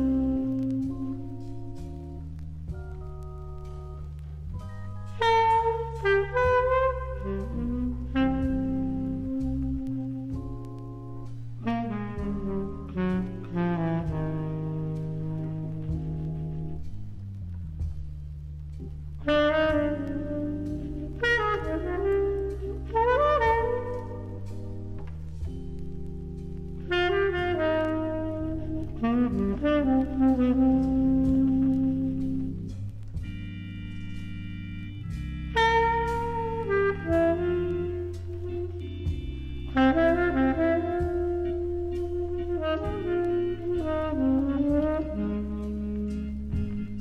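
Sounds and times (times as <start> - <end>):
tenor saxophone melody: 0.0 - 17.1, 19.2 - 47.0
bass: 0.0 - 47.0
low held accompaniment: 0.0 - 47.0
piano chords: 0.0 - 47.0.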